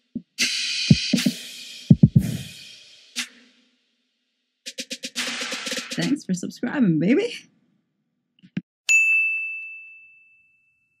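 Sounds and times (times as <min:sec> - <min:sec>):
bright ding: 0:08.9 - 0:11.0.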